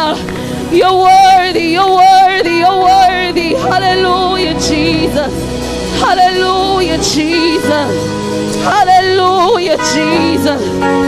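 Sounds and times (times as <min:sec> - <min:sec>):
amplified voice singing gospel: 0:00.0 - 0:11.0.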